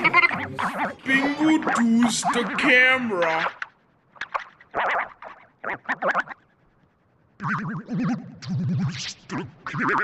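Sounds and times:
cartoon blips: 0.0s - 6.4s, 7.4s - 10.0s
long wobbling cartoon sound: 0.0s - 6.5s, 7.4s - 10.0s.

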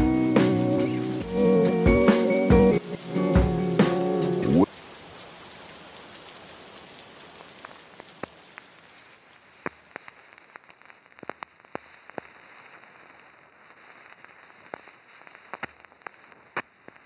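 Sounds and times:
lofi track slowing down: 0.0s - 4.7s
steady rain: 0.0s - 17.0s
crackle clicks: 6.9s - 17.0s.

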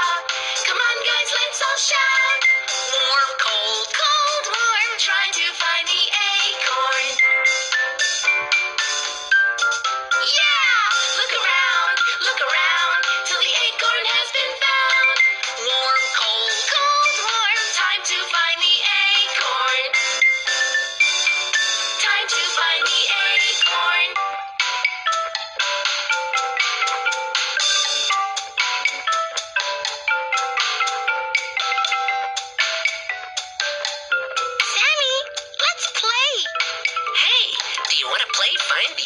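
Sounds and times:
cartoon song with high singing: 0.0s - 39.0s.

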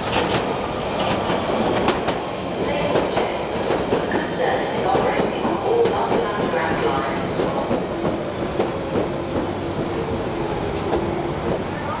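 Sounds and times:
train wheels clicking over rail joints: 0.0s - 2.2s, 2.9s - 10.0s
train rumble: 0.0s - 12.0s
high wheel squeal: 10.7s - 12.0s.

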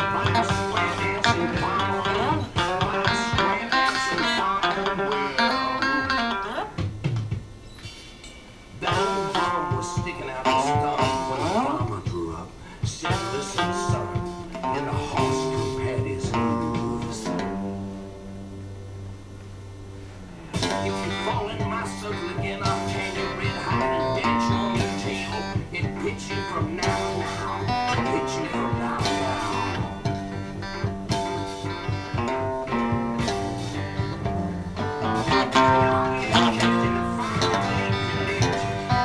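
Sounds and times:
electric guitar bluesy riffs: 0.0s - 39.0s.

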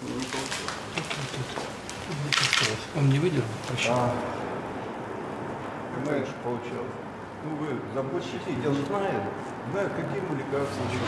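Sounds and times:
room hum: 0.0s - 11.0s.

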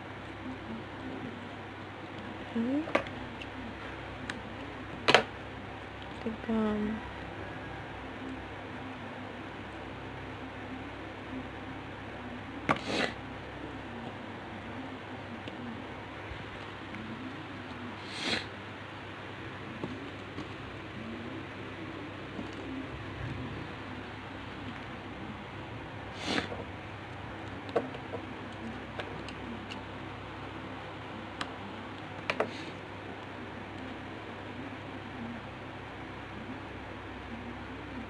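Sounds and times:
steady background hiss: 0.0s - 38.0s.

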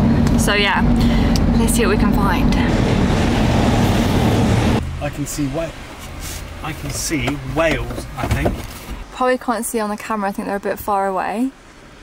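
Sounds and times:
engine rumble: 0.0s - 12.0s
tyres rushing on road: 0.0s - 12.0s.

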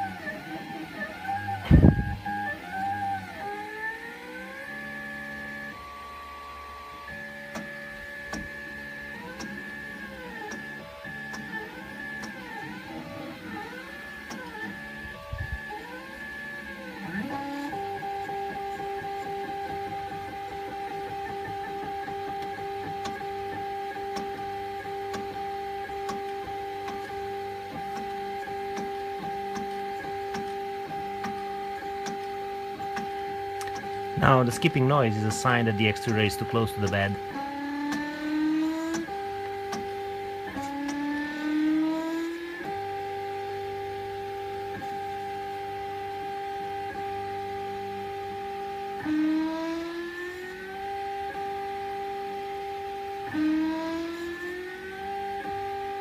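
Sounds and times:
steady two-note hum: 0.0s - 56.0s
stepper motors whining: 0.0s - 56.0s.

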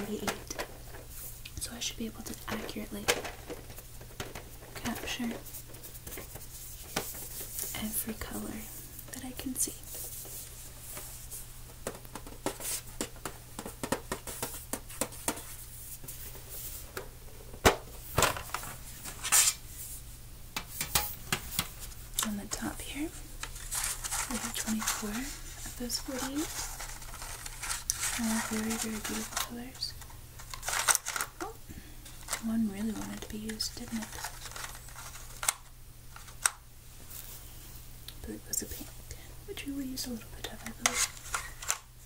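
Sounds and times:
pencils shifting inside tin: 23.5s - 31.4s.

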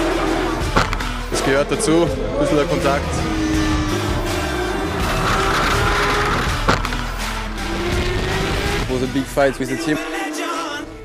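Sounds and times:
race car engine accelerating: 0.0s - 9.0s
background music: 0.0s - 11.0s.

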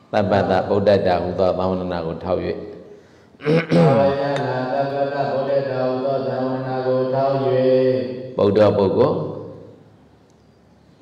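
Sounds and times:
man chanting: 3.4s - 9.6s.

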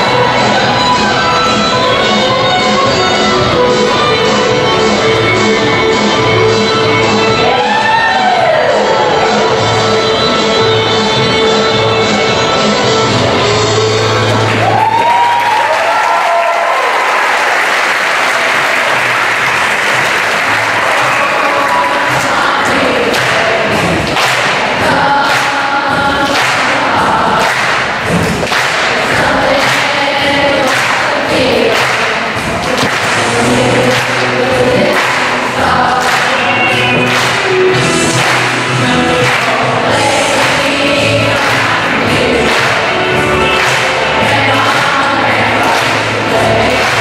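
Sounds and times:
children's choir singing: 0.0s - 14.6s, 18.4s - 47.0s
instrumental accompaniment with beat: 0.0s - 15.4s, 18.9s - 47.0s.

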